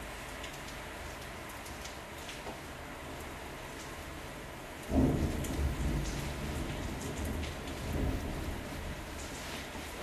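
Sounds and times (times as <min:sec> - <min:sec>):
rain on window glass: 0:00.0 - 0:10.0
thunderclap rumbling: 0:04.9 - 0:09.3.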